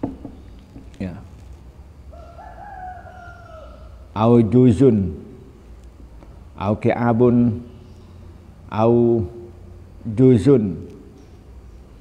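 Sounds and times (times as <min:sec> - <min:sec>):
faint rooster crowing: 0:02.0 - 0:04.2.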